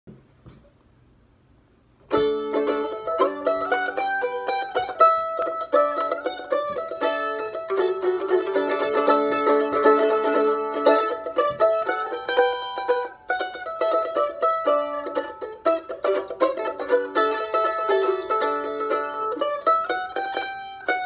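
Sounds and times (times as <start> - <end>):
solo mandolin picking: 2.1 - 21.0.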